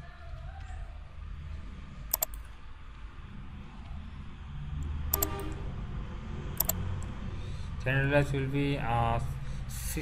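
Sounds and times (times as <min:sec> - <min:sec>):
computer mouse clicks: 0:02.1 - 0:02.5, 0:04.8 - 0:05.4, 0:06.6 - 0:07.1.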